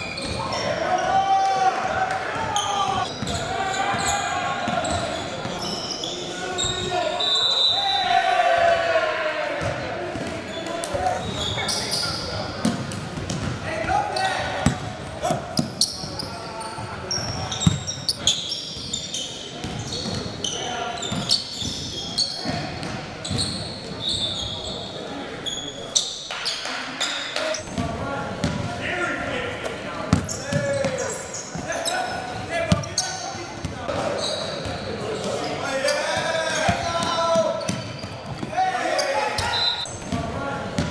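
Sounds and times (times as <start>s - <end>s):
sneakers squeaking: 0.0s - 1.2s, 1.8s - 8.2s, 9.6s - 40.9s
basketball bouncing on hardwood court: 12.6s - 13.6s, 17.3s - 17.9s.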